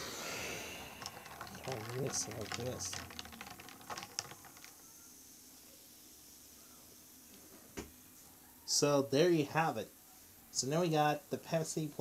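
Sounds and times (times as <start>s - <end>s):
faint hiss: 0.0s - 3.0s
ice clicking in a stirred glass: 0.8s - 4.8s.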